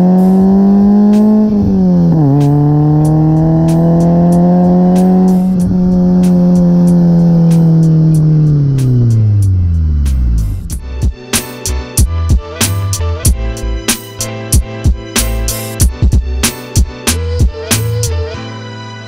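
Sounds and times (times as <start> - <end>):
car engine and exhaust revving: 0.0 - 10.9.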